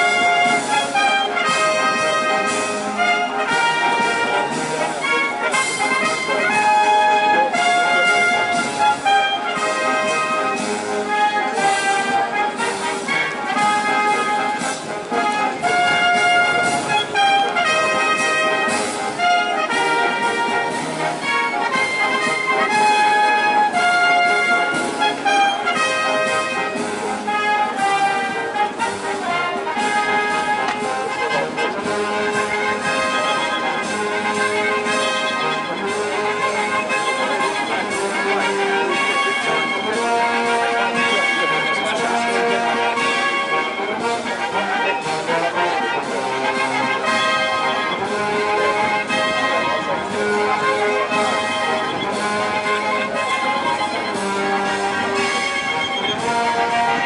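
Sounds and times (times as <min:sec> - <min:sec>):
brass band playing: 0:00.0 - 0:57.0.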